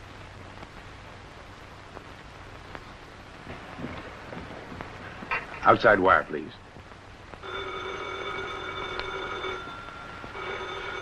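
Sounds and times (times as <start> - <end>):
telephone bell ringing: 7.4 - 11.0.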